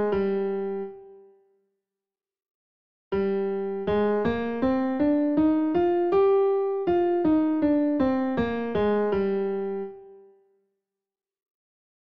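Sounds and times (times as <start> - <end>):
piano playing a scale: 0.0 - 1.2, 3.2 - 10.4.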